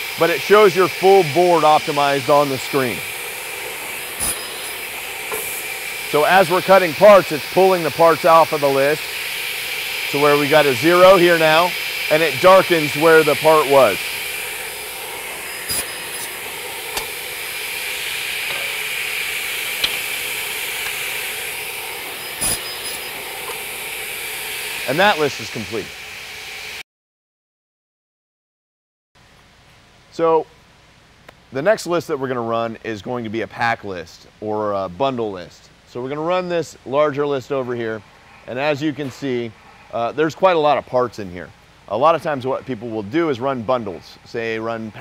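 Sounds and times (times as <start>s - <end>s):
machine whining: 0.0s - 26.8s.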